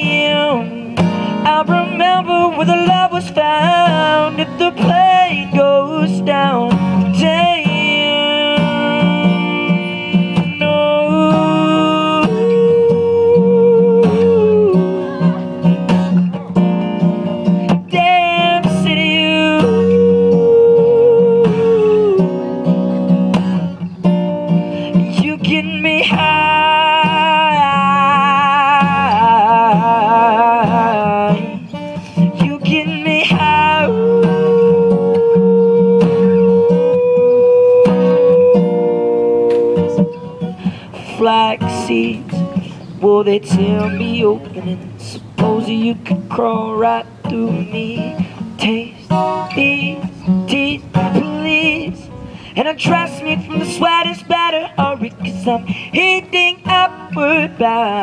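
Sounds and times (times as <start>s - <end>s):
acoustic guitar: 0.0s - 58.0s.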